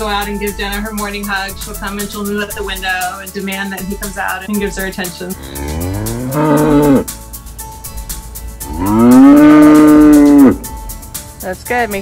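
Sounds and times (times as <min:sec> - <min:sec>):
cow mooing: 0:05.4 - 0:07.1, 0:08.7 - 0:10.7.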